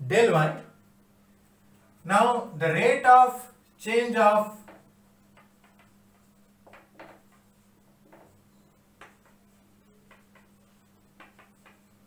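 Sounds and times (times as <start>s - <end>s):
marker pen on whiteboard: 3.6s - 12.0s.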